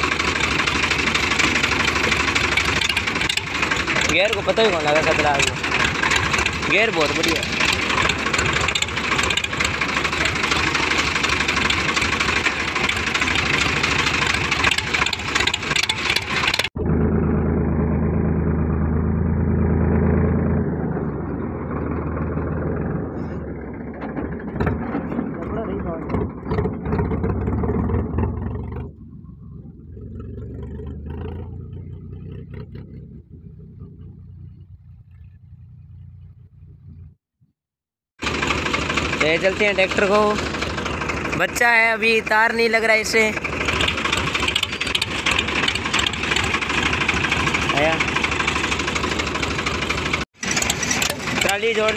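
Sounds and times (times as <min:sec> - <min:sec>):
tractor engine with open exhaust: 0:00.0 - 0:37.2, 0:38.2 - 0:51.9.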